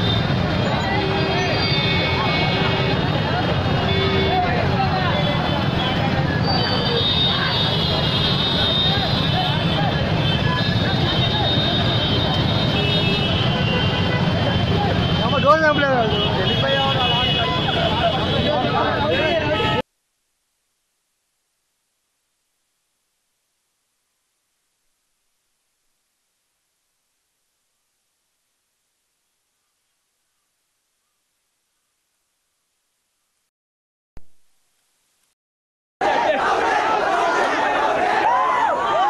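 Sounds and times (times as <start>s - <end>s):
crowd shouting: 36.0s - 39.0s
loud shout: 36.0s - 39.0s.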